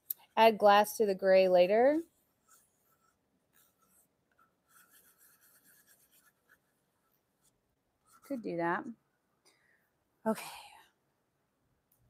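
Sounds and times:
faint rubbing: 0:02.0 - 0:08.5.

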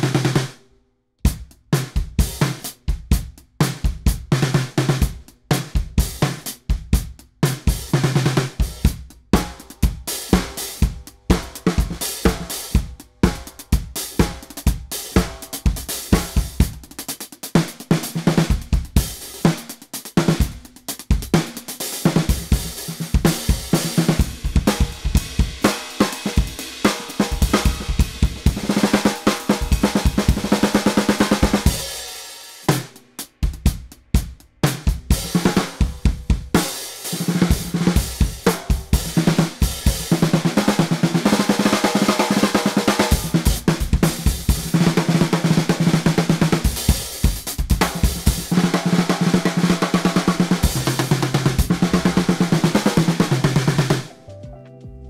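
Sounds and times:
snare drum groove: 0:00.0 - 0:00.6, 0:01.2 - 0:54.1.

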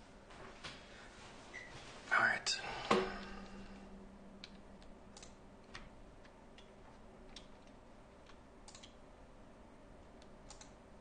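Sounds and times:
man whispering: 0:02.1 - 0:03.6
sharp clicks: 0:04.4 - 0:09.0, 0:10.2 - 0:10.8.

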